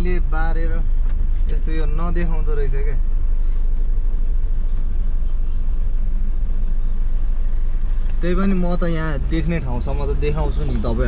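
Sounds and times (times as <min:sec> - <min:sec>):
vehicle engine and road rumble: 0:00.0 - 0:11.0.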